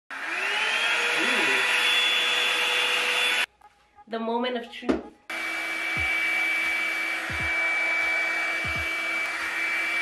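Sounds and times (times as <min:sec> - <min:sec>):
hair dryer brush running: 0:00.1 - 0:03.5, 0:05.3 - 0:10.0.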